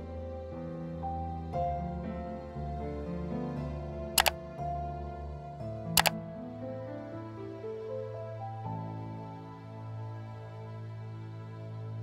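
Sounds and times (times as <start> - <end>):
soft slow background music: 0.0 - 4.0, 6.5 - 12.0.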